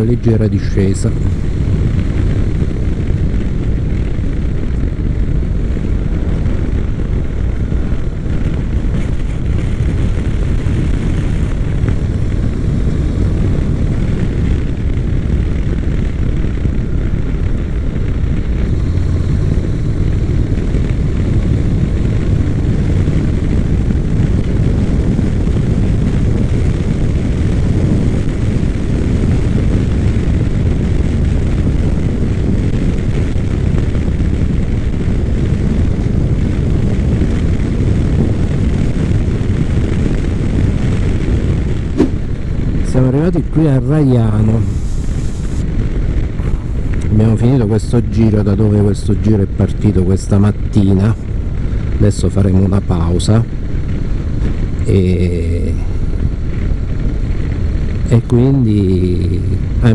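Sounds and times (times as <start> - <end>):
motorcycle engine drone: 0.0 - 59.9
wind rushing on microphone: 0.0 - 59.9.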